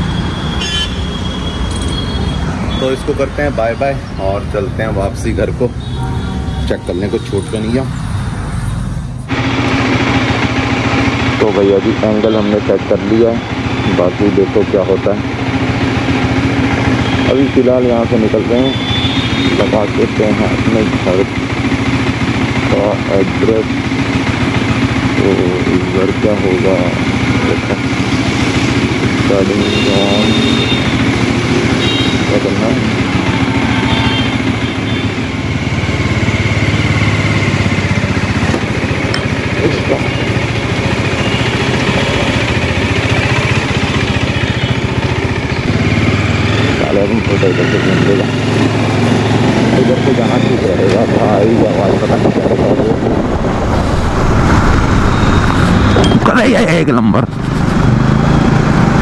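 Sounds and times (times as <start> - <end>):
motorcycle engine idling: 9.3 - 53.0.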